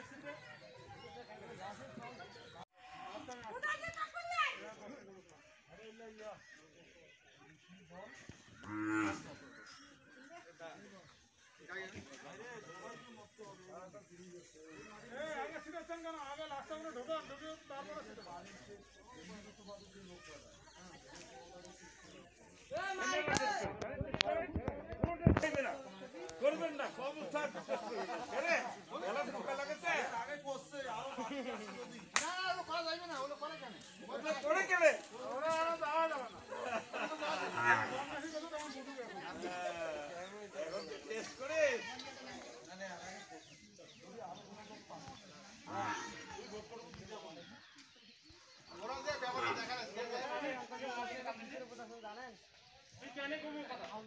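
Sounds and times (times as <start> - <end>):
people talking: 0.0 - 48.0
sharp slap or clap: 32.1 - 32.4.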